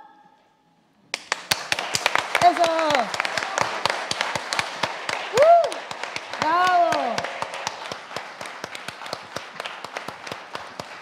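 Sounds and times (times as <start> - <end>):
audience applause: 1.1 - 11.0.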